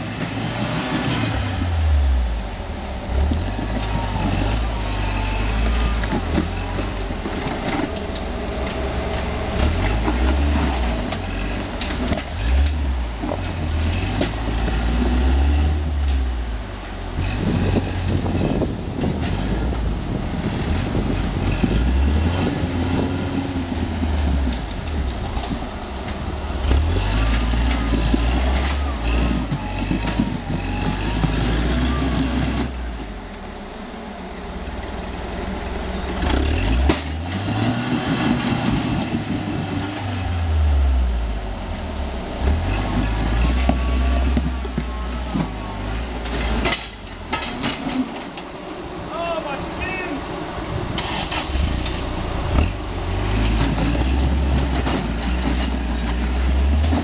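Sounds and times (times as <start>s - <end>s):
buggy engine revving under load: 0.0s - 57.0s.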